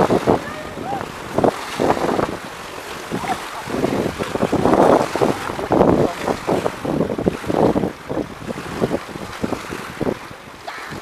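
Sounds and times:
river water washing: 0:00.0 - 0:11.0
wind buffeting microphone: 0:00.0 - 0:11.0.

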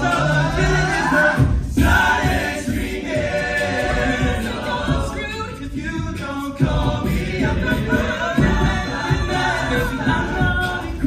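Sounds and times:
male a cappella group singing: 0:00.0 - 0:11.0.

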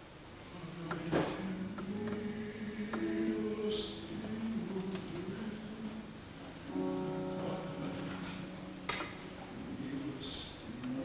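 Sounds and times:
bass voice singing softly: 0:00.4 - 0:11.0
held piano notes: 0:00.9 - 0:11.0.

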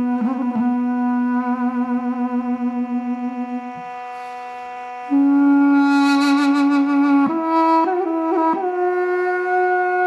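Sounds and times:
steady drone note: 0:00.0 - 0:09.6
duduk note with vibrato: 0:00.0 - 0:10.0.

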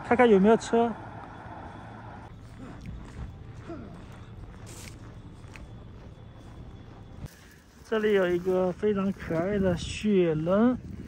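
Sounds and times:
low street rumble: 0:00.0 - 0:10.8.

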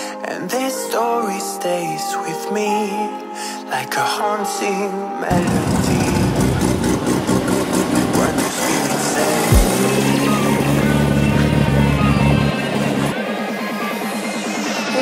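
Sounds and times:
background music: 0:00.0 - 0:15.0
car engine pulling away: 0:05.3 - 0:13.2.

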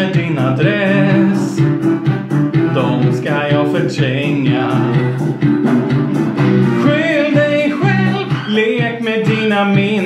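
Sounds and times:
pop song with gliding vocals: 0:00.0 - 0:10.0.

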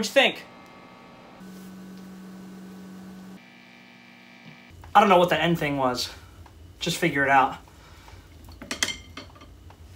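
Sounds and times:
electric guitar amp hum: 0:00.0 - 0:04.8.

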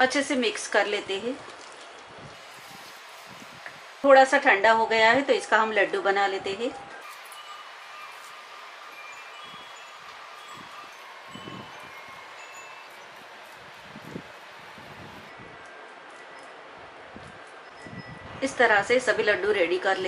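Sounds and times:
steady hiss: 0:02.1 - 0:05.1, 0:07.0 - 0:15.4
faint chime-like tinkling: 0:07.0 - 0:14.4.

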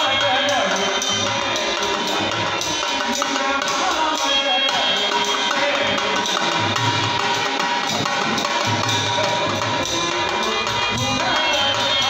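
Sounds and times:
hand drum rhythm: 0:00.0 - 0:12.0
harmonium held tones: 0:00.0 - 0:12.0.

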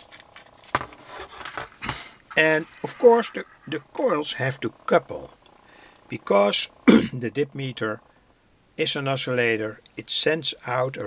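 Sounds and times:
light rattling and scraping: 0:00.0 - 0:03.9.

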